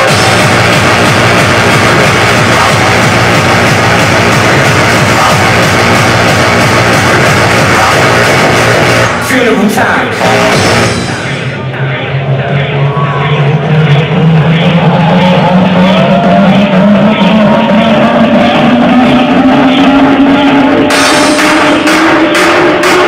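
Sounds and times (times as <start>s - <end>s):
hardcore dance music over pa: 0.0s - 23.0s.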